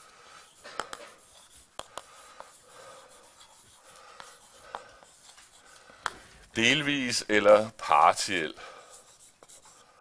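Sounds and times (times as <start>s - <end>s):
chalk scratching on blackboard: 0.0s - 6.3s, 7.4s - 10.0s
chalk tapping on board: 0.5s - 6.2s, 9.0s - 9.9s.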